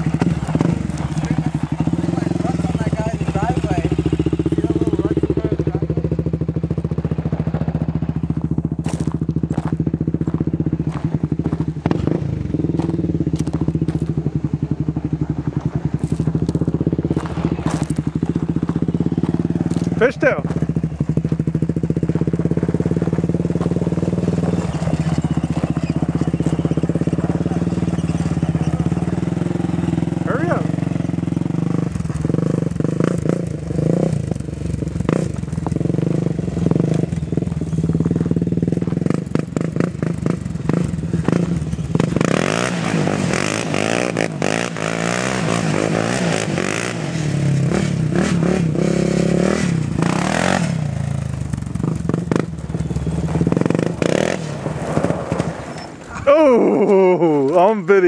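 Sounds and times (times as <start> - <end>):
atv engine revving: 0.0 - 58.0
gravel crunching under tires: 0.0 - 58.0.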